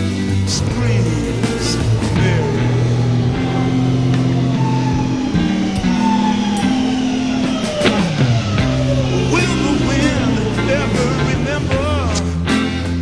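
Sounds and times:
bass notes: 0:00.0 - 0:13.0
drum and cymbal hits: 0:00.0 - 0:13.0
electric guitar sliding notes: 0:00.0 - 0:13.0.

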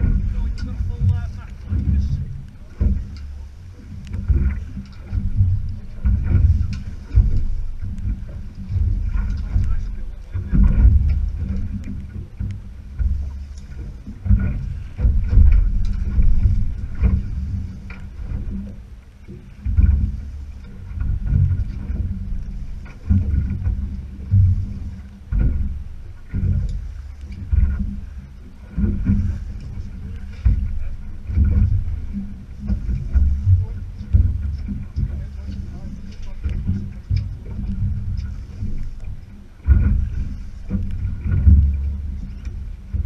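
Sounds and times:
water against boat hull: 0:00.0 - 0:43.0
wind rumbling on microphone: 0:00.0 - 0:43.0.

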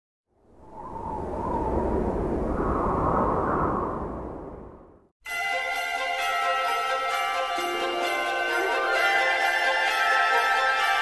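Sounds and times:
deep rumble: 0:00.5 - 0:05.1.

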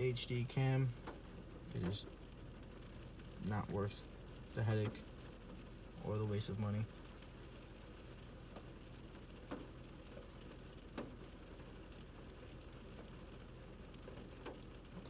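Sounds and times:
low steady hum and hiss: 0:00.0 - 0:15.0.

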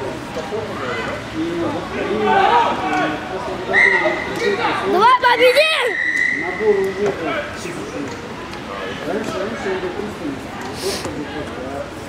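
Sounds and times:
spectators talking and calling: 0:00.0 - 0:12.0.

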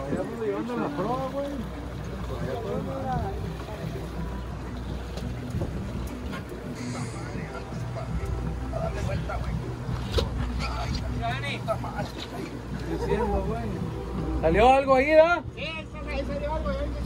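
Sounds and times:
boat engine running: 0:00.0 - 0:17.0
voices talking: 0:00.0 - 0:17.0
wind on microphone: 0:05.4 - 0:07.6.

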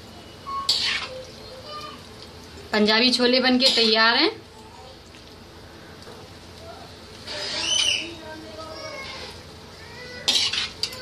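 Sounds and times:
spoon scraping metal pot: 0:10.3 - 0:10.9.

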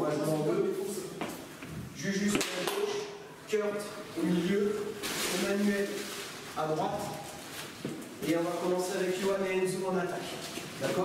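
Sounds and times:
man talking: 0:00.0 - 0:01.3, 0:02.0 - 0:07.4, 0:08.2 - 0:11.0.

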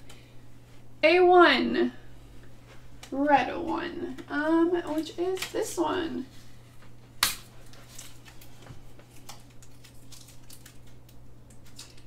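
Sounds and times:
low steady hum: 0:00.0 - 0:12.0
cards and paper rustling: 0:07.6 - 0:12.0.

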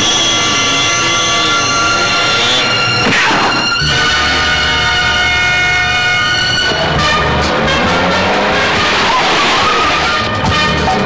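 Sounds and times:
steady horn-like blare: 0:00.0 - 0:11.0.

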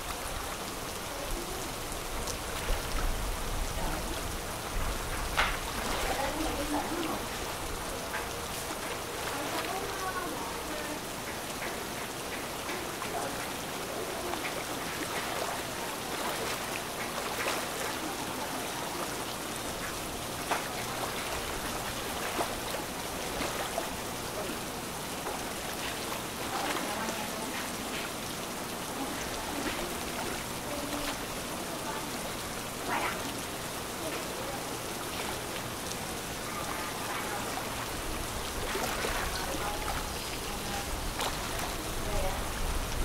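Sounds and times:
steady rain falling: 0:00.0 - 0:43.0.

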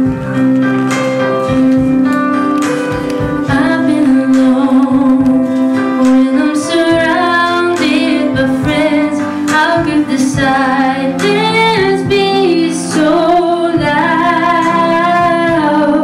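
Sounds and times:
instrumental accompaniment: 0:00.0 - 0:16.0
woman singing into a microphone: 0:03.3 - 0:16.0.

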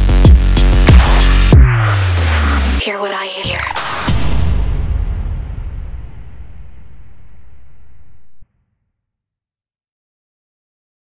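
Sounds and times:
electronic music: 0:00.0 - 0:04.9.

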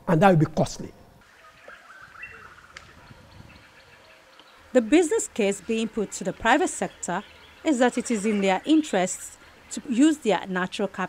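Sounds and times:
forest ambience: 0:00.0 - 0:11.0
faint bird chirps: 0:01.3 - 0:10.2.

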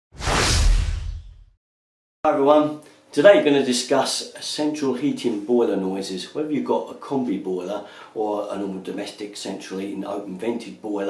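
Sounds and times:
whoosh with deep rumble: 0:00.2 - 0:01.5.

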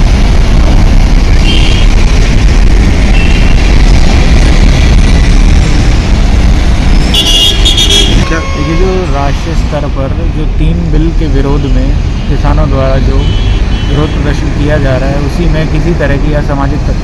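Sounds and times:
heavy road traffic rumble: 0:00.0 - 0:17.0
high-pitched horn toots: 0:07.0 - 0:09.4.

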